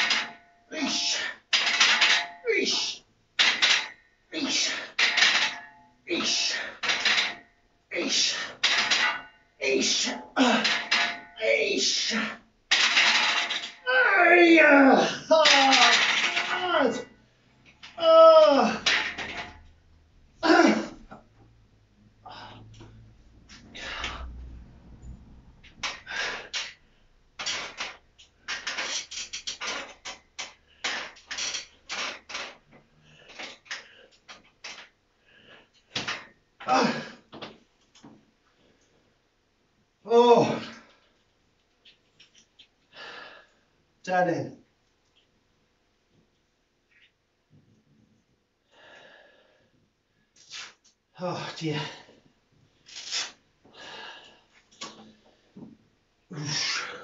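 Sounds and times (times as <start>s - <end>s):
man breathing hard: 22.2s - 22.9s, 42.9s - 43.7s, 48.7s - 49.8s, 53.7s - 54.7s.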